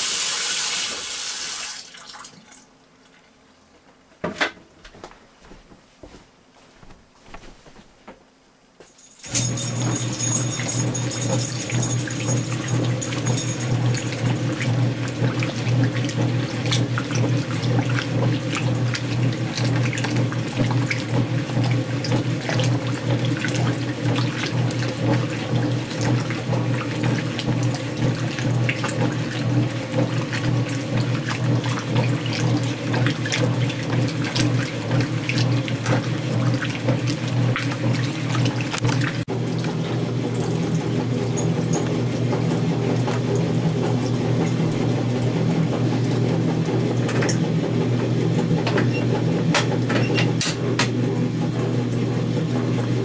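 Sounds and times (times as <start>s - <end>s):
washer motor hum: 0.0s - 53.0s
agitator churning clothes in water: 9.2s - 53.0s.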